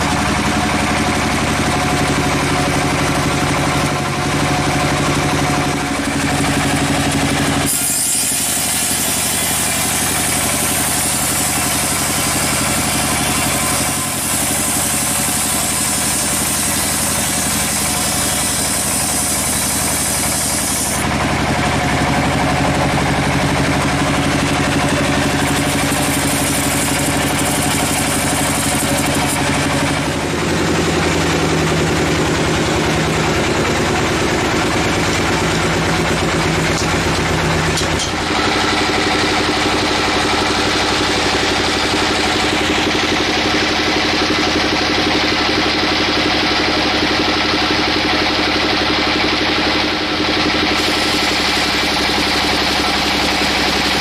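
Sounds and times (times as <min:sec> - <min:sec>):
sawmill engine running: 0:00.0 - 0:54.0
saw blade hissing through log: 0:06.2 - 0:21.1, 0:24.8 - 0:30.2, 0:50.7 - 0:54.0.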